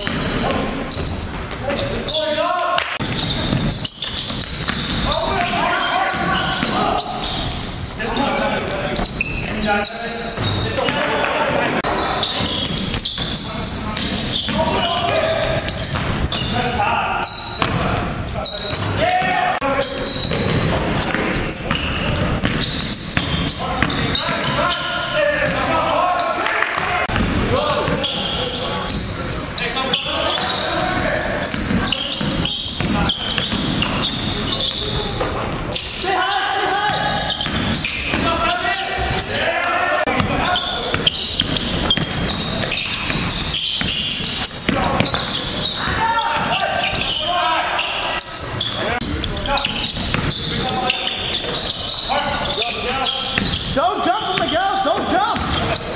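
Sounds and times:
players' voices: 0.0 - 55.9
basketball bouncing on wooden floor: 3.0 - 5.6, 17.6 - 18.1, 20.2 - 24.6, 31.5 - 34.4, 36.9 - 38.3, 40.2 - 45.4, 49.9 - 50.4, 53.4 - 55.8.

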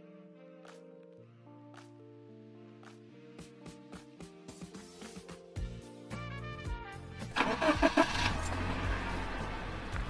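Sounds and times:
car engine starting and running: 7.3 - 10.0.

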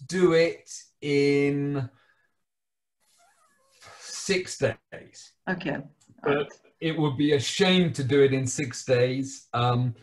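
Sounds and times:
person speaking: 5.5 - 7.6.

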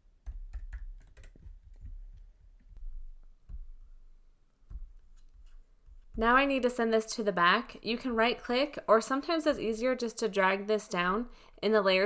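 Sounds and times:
computer keyboard typing: 0.2 - 3.1.

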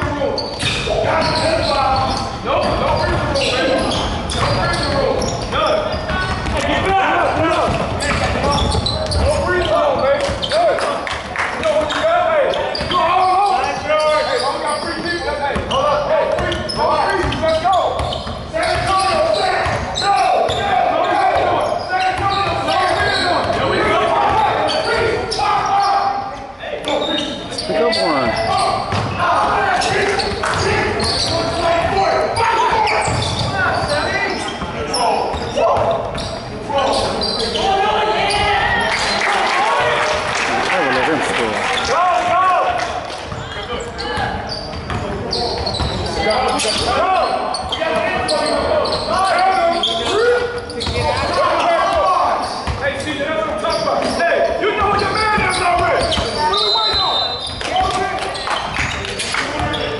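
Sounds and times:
basketball bouncing on wooden floor: 4.3 - 9.4
people calling out: 27.0 - 35.8.

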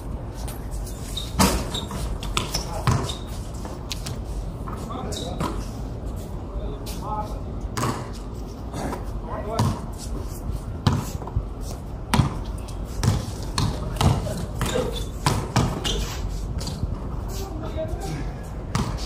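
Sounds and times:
basketball bouncing on concrete: 1.4 - 3.2, 7.8 - 8.1, 9.4 - 9.9, 10.8 - 11.3, 12.1 - 16.0, 18.7 - 19.0.

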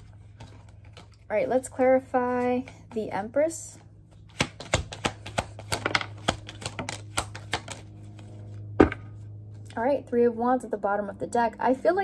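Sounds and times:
cards being shuffled: 0.0 - 3.3, 4.0 - 8.7.

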